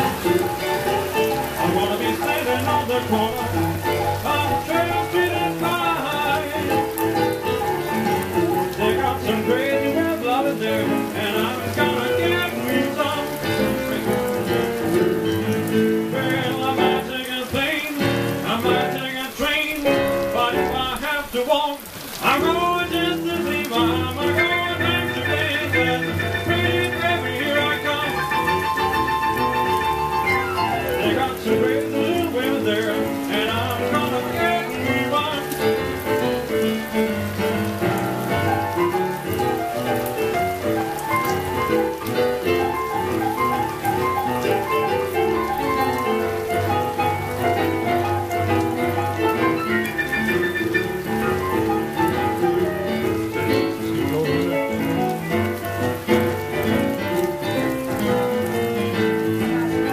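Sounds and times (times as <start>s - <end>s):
electric pianos playing boogie-woogie: 0.0s - 59.9s.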